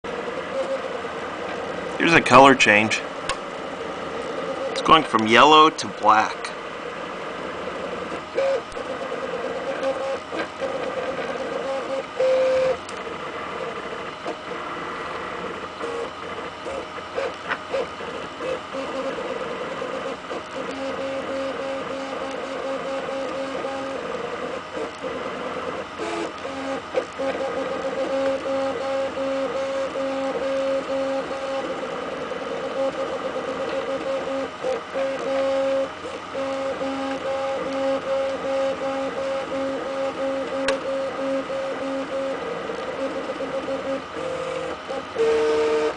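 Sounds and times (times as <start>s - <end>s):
printer running noise: 0.0s - 45.9s
stepper motors whining: 15.2s - 45.9s.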